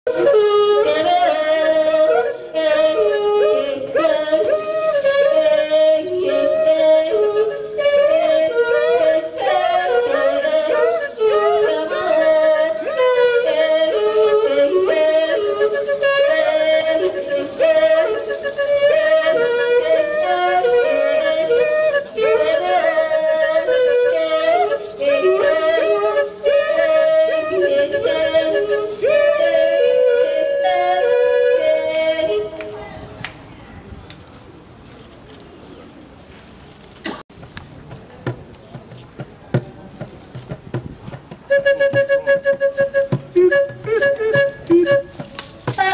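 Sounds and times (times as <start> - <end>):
woman singing into microphone: 0.6 - 32.6.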